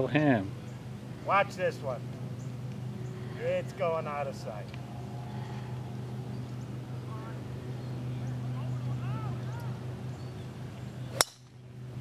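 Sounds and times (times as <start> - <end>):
golf driver striking ball: 11.1 - 11.6.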